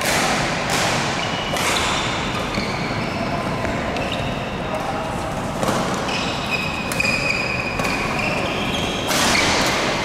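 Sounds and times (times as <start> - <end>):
rackets hitting shuttlecock: 0.0 - 4.2, 5.5 - 10.0.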